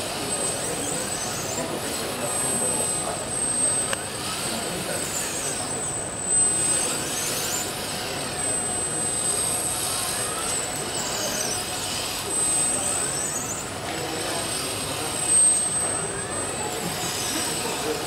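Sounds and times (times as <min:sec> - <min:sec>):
robot arm motors whining: 0:00.0 - 0:18.0
steady high-pitched whine: 0:00.0 - 0:18.0.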